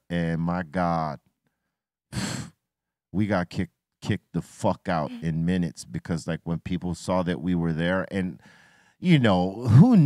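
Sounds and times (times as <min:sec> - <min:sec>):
man speaking: 0:03.2 - 0:08.4, 0:09.0 - 0:10.0.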